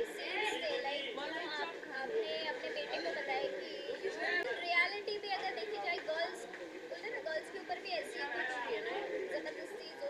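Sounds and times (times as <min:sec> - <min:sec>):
chatter of several voices: 0:00.0 - 0:10.0.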